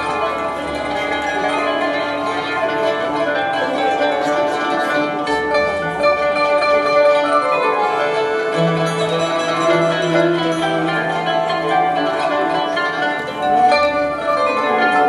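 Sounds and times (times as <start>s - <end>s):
oud: 0.0s - 15.0s
plucked qanun: 0.0s - 15.0s
violins: 0.0s - 15.0s.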